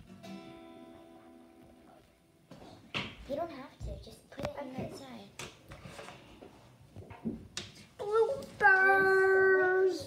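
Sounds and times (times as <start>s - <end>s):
child singing: 8.0s - 10.0s.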